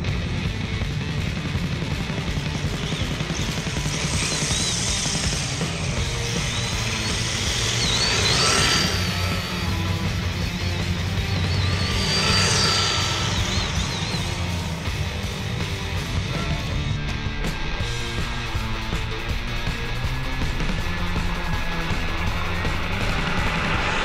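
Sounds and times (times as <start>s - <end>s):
background music: 0.0s - 24.0s
rc car motor whine: 1.1s - 16.9s, 17.8s - 24.0s
tyre hiss on asphalt: 3.2s - 10.1s.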